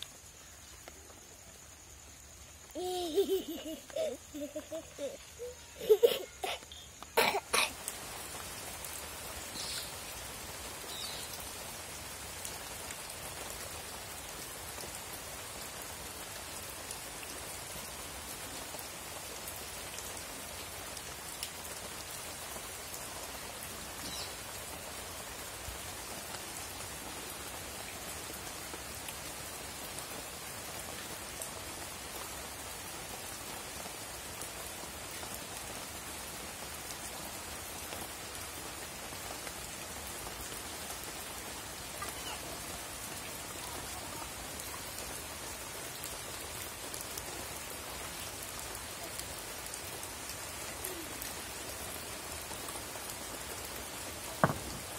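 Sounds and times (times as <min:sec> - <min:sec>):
steady hiss: 0:00.0 - 0:54.9.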